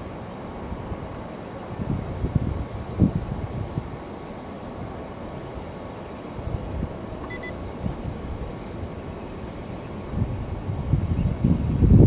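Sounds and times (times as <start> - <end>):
wind buffeting microphone: 0.7 - 4.0, 6.3 - 12.0
short high electronic beeps: 7.3 - 7.6.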